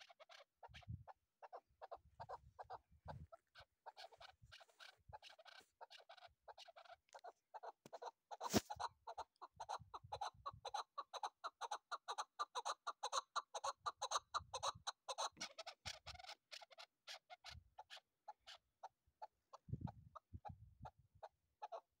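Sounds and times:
partridge calling: 0.0s - 21.9s.

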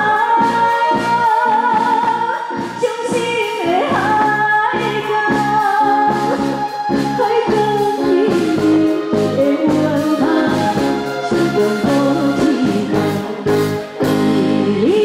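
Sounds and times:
live band playing: 0.0s - 15.0s
woman singing into a microphone: 0.0s - 15.0s.

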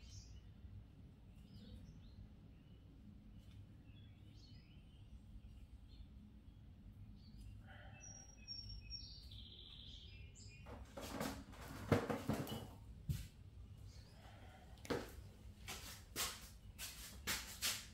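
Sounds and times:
faint bird chirps: 1.2s - 10.7s
knocks: 10.7s - 12.8s.

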